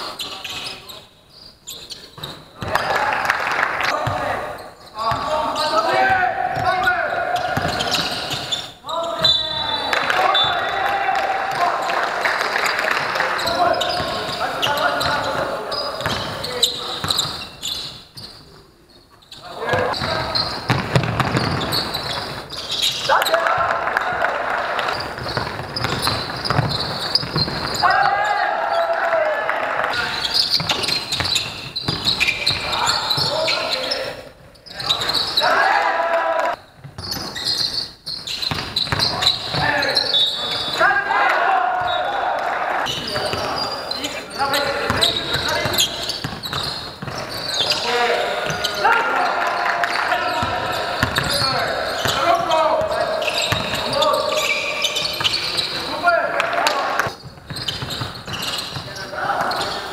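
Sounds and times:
players calling out: 0:01.7 - 0:18.4, 0:19.3 - 0:59.9
basketball bouncing on court: 0:05.9 - 0:08.4, 0:13.4 - 0:17.5, 0:19.7 - 0:23.7, 0:24.8 - 0:27.9, 0:30.4 - 0:33.5, 0:36.7 - 0:40.0, 0:42.9 - 0:43.6, 0:44.6 - 0:47.8, 0:50.3 - 0:55.7, 0:57.0 - 0:59.8.

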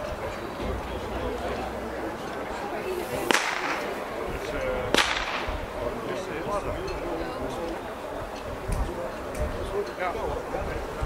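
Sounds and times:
pistol shots with echo: 0:03.2 - 0:04.0, 0:04.9 - 0:05.8.

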